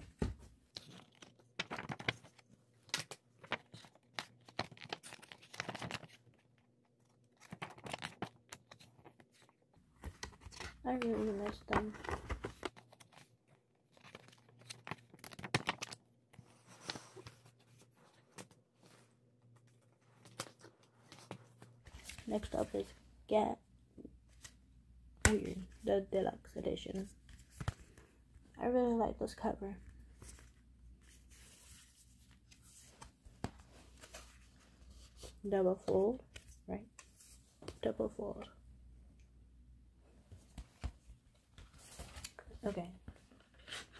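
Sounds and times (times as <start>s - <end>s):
paper rustling: 0.2s - 23.0s, 30.0s - 37.8s.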